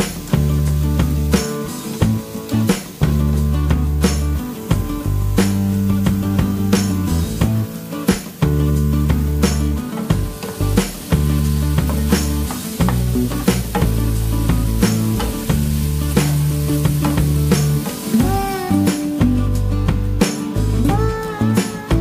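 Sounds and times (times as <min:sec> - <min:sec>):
background music with steady beat: 0:00.0 - 0:22.0
food sizzling in a frying pan: 0:00.0 - 0:22.0.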